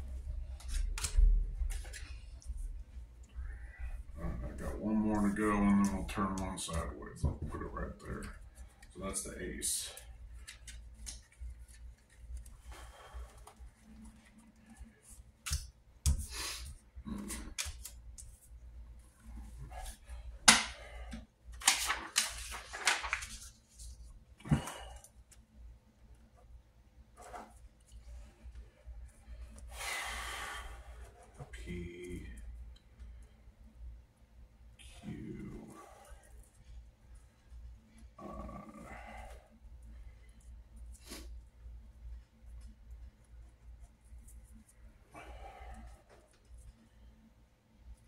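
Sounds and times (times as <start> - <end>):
paper rustling: 21.6 - 24.6.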